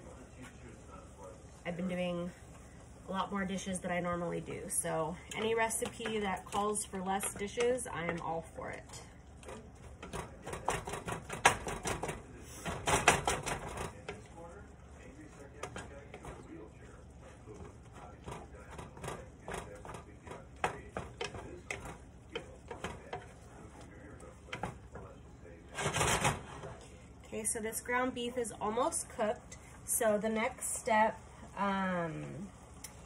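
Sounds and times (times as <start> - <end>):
wooden spoon scraping a pan: 9.4 - 14.4, 15.3 - 27.4.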